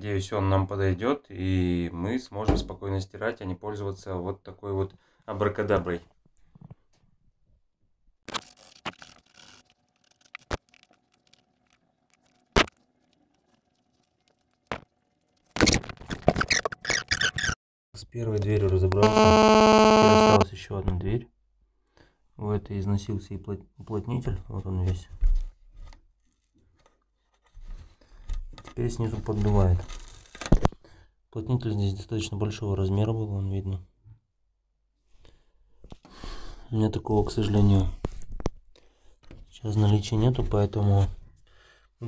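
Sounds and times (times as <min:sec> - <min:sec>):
fingers scratching weatherstrip: 0:08.3 - 0:17.6
rustling and scraping: 0:24.6 - 0:30.8.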